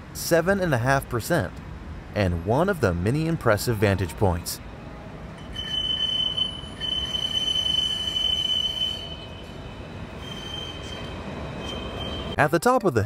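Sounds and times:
tram running rumble: 0.0 - 12.4
tram wheels squealing: 5.4 - 12.4.

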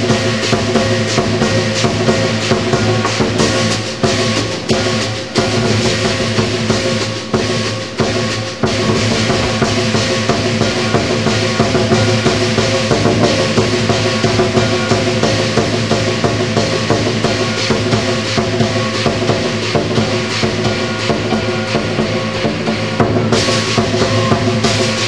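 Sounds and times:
big drum beaten rapidly: 0.0 - 25.0
cymbals clashing: 0.0 - 25.0
gong ringing: 0.1 - 25.0.

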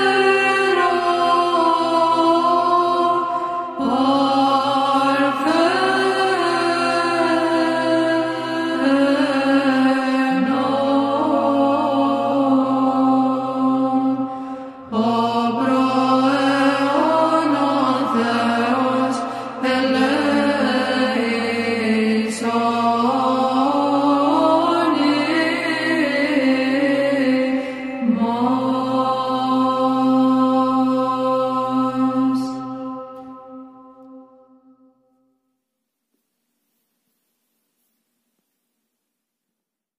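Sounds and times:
low vocal drone: 0.0 - 34.6
men chanting: 15.0 - 27.0.

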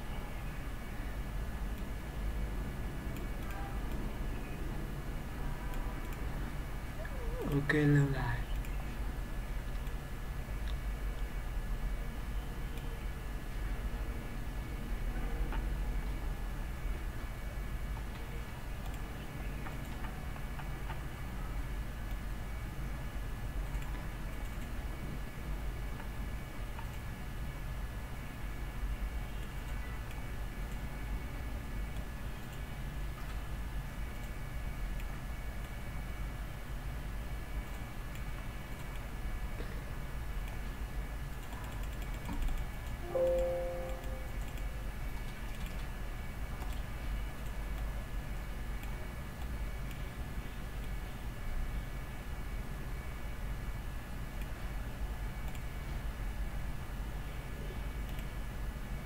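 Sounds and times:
low hum and hiss: 0.0 - 59.0
computer mouse clicks: 8.5 - 8.8, 9.7 - 10.0, 17.9 - 21.0, 23.6 - 24.8, 26.7 - 27.1, 34.1 - 35.8, 37.6 - 39.2, 41.3 - 43.0, 44.0 - 45.9, 46.6 - 47.9, 48.7 - 50.1, 55.4 - 55.8, 58.0 - 58.4
brief ringing tone: 43.0 - 44.4.

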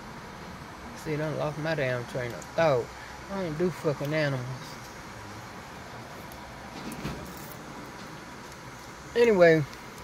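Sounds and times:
rustle: 1.9 - 10.0.

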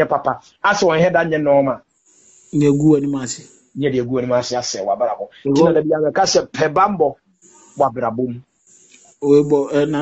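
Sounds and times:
faint hiss: 0.0 - 10.0
person speaking: 0.0 - 10.0.

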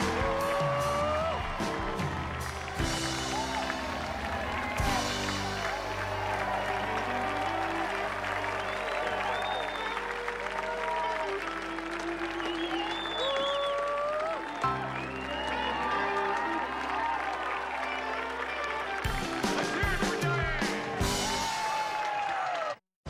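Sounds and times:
audience applauding: 0.0 - 22.8.

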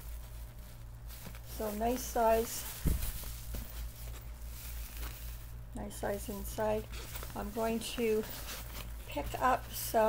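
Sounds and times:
insulated bag rustling and crinkling: 0.0 - 10.0
steady low hum: 0.0 - 10.0.

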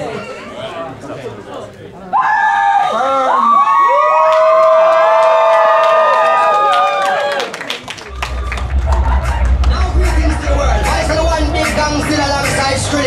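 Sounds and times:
audience chatter: 0.0 - 3.5, 7.0 - 13.0
crowd cheering and whooping: 2.2 - 13.0
people clapping: 3.9 - 11.8.

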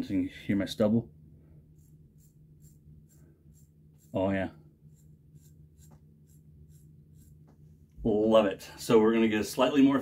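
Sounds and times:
razor scraping stubble: 1.7 - 7.6.

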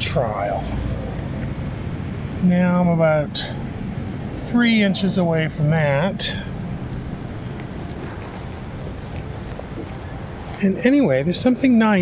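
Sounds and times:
wind buffeting microphone: 5.4 - 11.5.

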